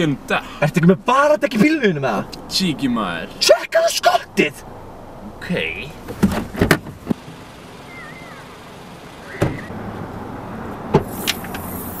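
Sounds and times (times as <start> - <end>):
car doors shutting: 6.0 - 7.4, 9.2 - 9.8, 10.8 - 12.0.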